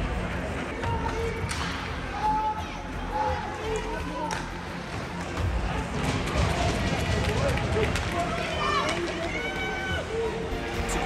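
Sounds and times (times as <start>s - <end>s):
music: 0.0s - 11.0s
spectators' voices: 0.0s - 11.0s
hockey sticks and puck clacking: 0.6s - 1.9s, 3.7s - 9.5s.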